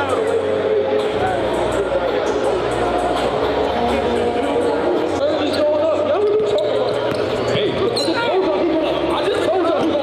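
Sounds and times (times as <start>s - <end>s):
basketball bouncing on court: 6.3s - 7.4s.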